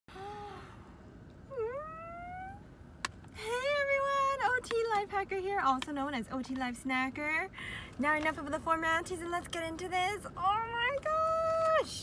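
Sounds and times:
woman humming: 0.1s - 0.7s, 1.5s - 2.6s
woman speaking: 3.4s - 12.0s.

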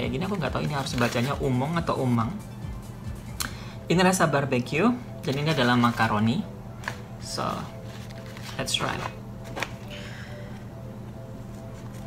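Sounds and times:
paper pouch rustling: 0.2s - 1.8s, 5.2s - 9.9s, 11.4s - 12.0s.

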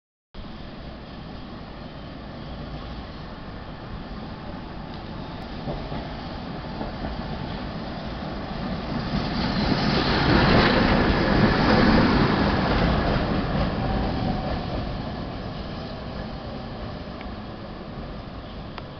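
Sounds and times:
tram running past on rails: 0.4s - 18.9s.

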